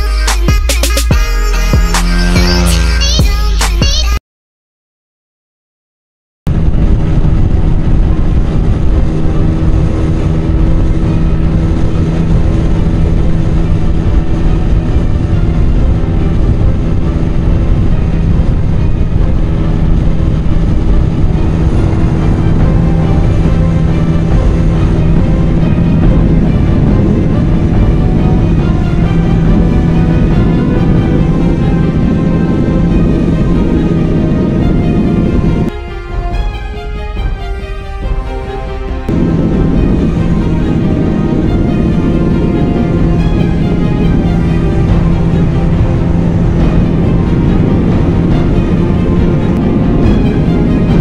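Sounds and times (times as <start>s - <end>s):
motorcycle engine at high revs: 1.8s - 3.0s
heavy wind rush: 6.5s - 51.0s.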